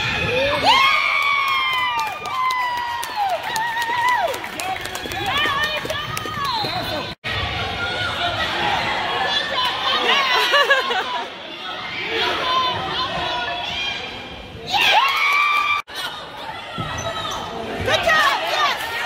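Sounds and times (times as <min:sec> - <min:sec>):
crowd shouts and cheers: 0:00.0 - 0:19.0.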